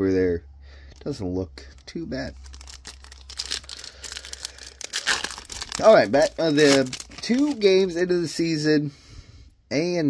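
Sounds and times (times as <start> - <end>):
foil wrapper crinkling and tearing: 2.3 - 8.0.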